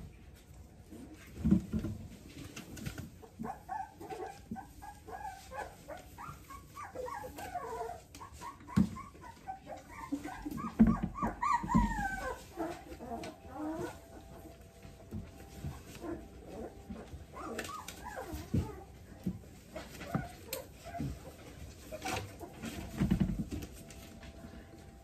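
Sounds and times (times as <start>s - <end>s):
puppies whimpering and yipping: 3.1s - 25.0s.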